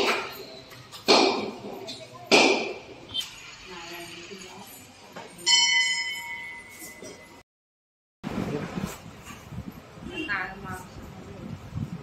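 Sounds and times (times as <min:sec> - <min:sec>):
brass bell ringing: 0:05.4 - 0:07.4.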